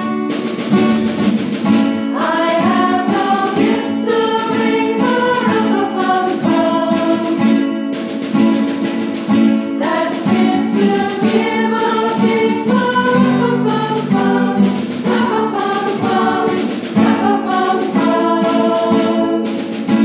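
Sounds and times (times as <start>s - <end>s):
acoustic guitar strumming: 0.0s - 20.0s
women's choir singing: 2.1s - 7.8s, 9.8s - 20.0s.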